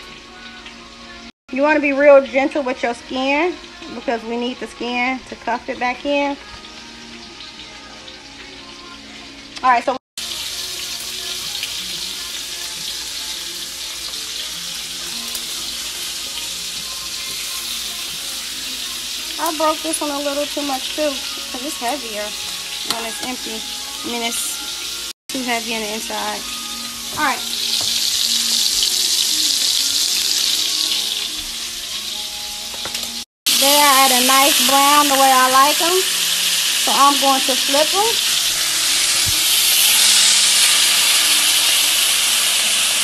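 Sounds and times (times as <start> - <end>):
steaks sizzling in a pan: 10.2 - 43.0.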